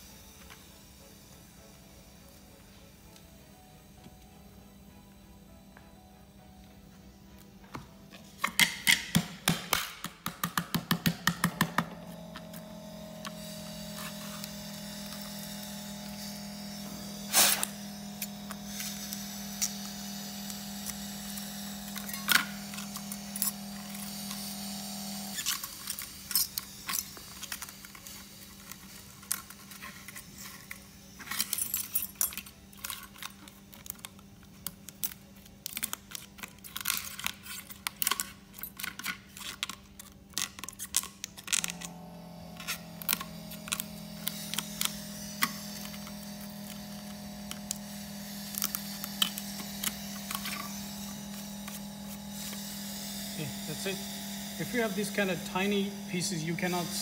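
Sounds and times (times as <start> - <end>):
freezer low hum: 11.0 - 57.0.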